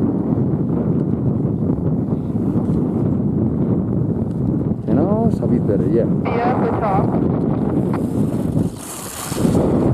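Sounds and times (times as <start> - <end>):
wind buffeting microphone: 0.0 - 9.9.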